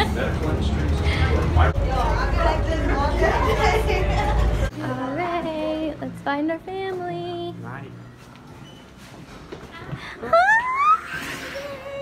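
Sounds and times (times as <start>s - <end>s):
woman squealing excitedly: 10.2s - 12.0s.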